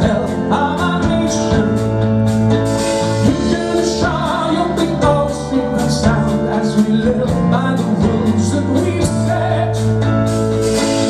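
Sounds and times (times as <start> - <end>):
person singing lead vocal: 0.0 - 10.4
drum kit with cymbal hits: 0.0 - 11.0
keyboards: 0.0 - 11.0
electric guitars: 7.3 - 11.0.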